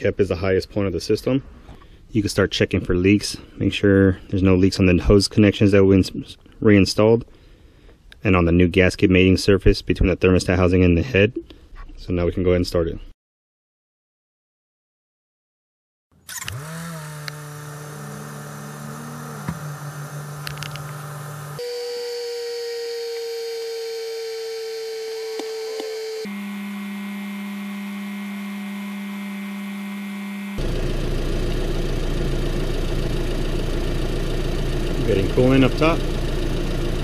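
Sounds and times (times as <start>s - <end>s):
car engine starting: 16.2s - 21.6s, 30.6s - 37.0s
car engine idling: 30.6s - 37.0s.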